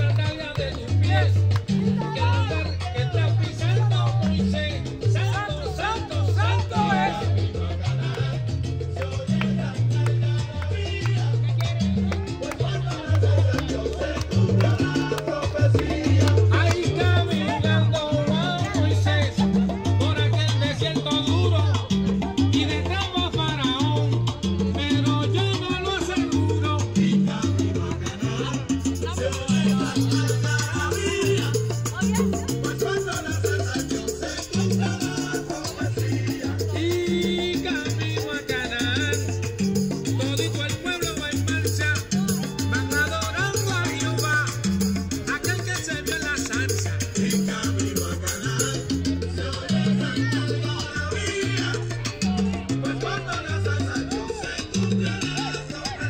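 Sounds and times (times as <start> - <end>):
person singing: 0.0 - 21.9, 22.5 - 39.5, 40.1 - 44.6, 45.2 - 56.0
salsa music with bass line: 0.0 - 56.0.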